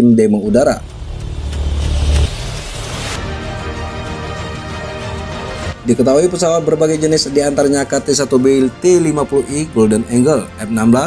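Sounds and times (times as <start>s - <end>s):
deep rumble: 0.5s - 4.4s.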